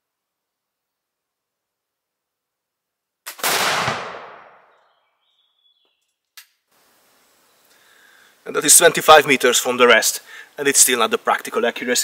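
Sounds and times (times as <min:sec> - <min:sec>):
gunshot with echo: 0:03.3 - 0:04.7.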